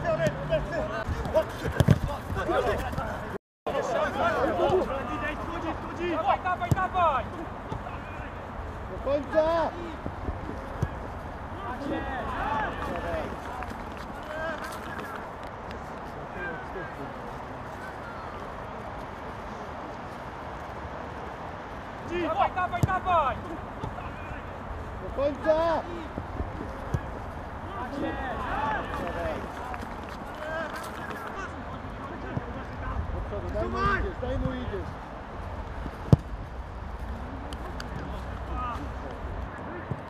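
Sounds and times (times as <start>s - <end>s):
distant shouts of players: 3.7s - 15.2s, 22.0s - 31.6s.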